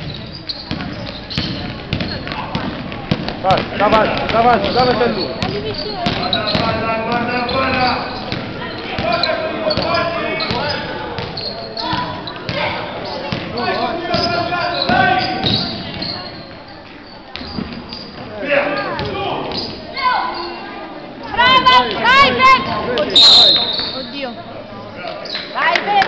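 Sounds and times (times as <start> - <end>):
basketball bouncing on gym floor: 0.0 - 16.5
voices shouting: 18.4 - 24.2.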